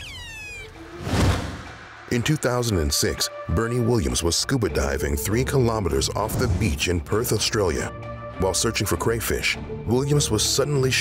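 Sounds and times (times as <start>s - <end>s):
falling whistle-like tone: 0.0s - 0.7s
whoosh: 0.8s - 2.6s.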